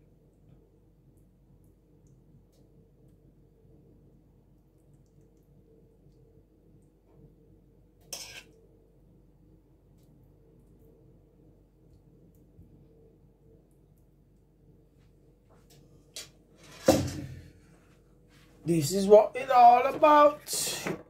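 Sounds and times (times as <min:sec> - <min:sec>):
low steady hum: 0:00.0 - 0:20.8
metal spoon scraping dish: 0:08.0 - 0:08.6.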